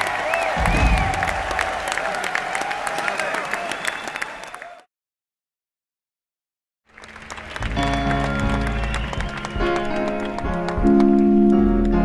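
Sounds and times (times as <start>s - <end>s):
live band with piano: 7.6s - 12.0s.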